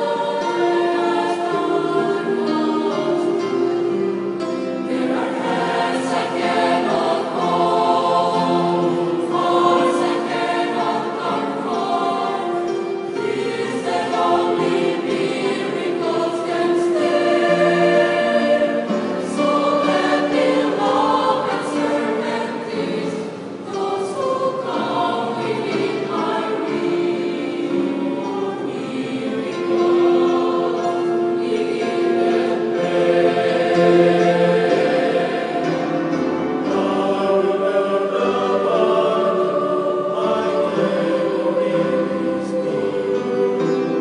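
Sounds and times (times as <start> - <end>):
choir singing: 0.0 - 44.0.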